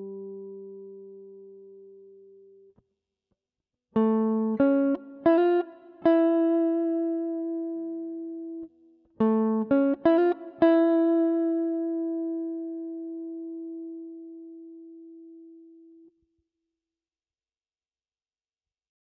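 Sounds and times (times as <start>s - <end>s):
electric guitar single-note lick: 0.0s - 2.5s, 4.0s - 16.1s.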